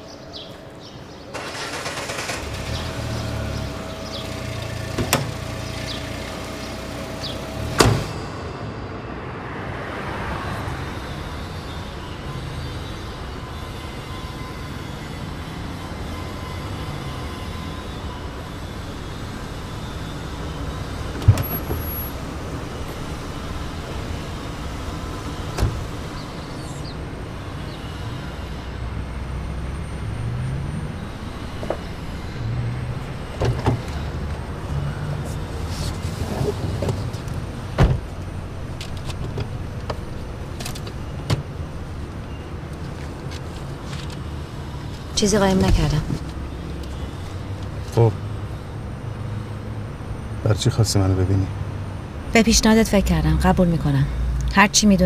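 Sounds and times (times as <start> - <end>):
car engine rumbling: 0.0 - 12.3, 17.8 - 55.0
car door shutting: 7.7 - 8.2, 21.1 - 21.9, 25.5 - 26.2, 36.2 - 38.2.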